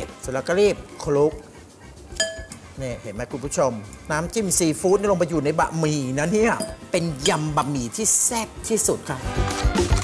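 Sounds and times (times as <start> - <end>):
fork clinking glass bowl: 2.2 - 2.6, 6.5 - 7.8.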